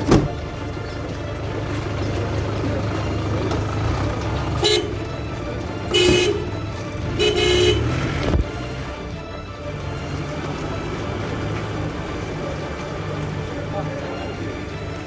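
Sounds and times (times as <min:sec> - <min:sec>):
vehicle low rumble: 0:00.0 - 0:15.0
car horn blasts: 0:04.6 - 0:05.1, 0:05.9 - 0:08.0.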